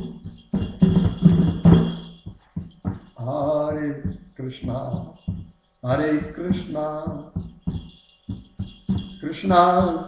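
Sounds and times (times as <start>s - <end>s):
man chanting: 3.2s - 7.4s, 9.2s - 10.0s.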